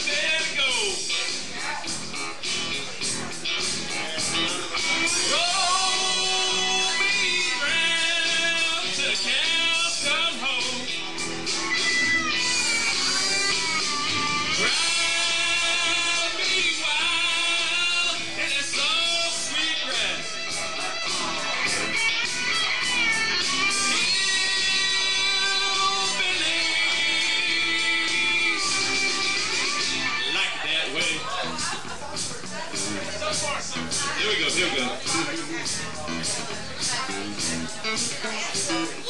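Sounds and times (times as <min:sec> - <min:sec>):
electric guitar: 0:00.0 - 0:30.4, 0:31.1 - 0:39.0
country-rock band backing track: 0:00.0 - 0:39.0.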